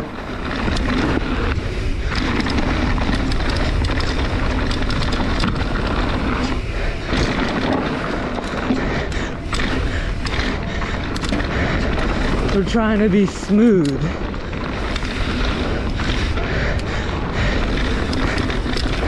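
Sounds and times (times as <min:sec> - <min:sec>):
bike clicks and rattles: 0:00.0 - 0:19.0
bike tyres roaring on dirt: 0:00.0 - 0:19.0.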